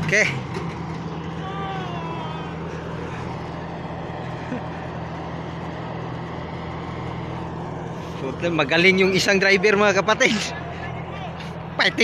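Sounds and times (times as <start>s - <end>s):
harvester engine droning: 0.0s - 12.0s.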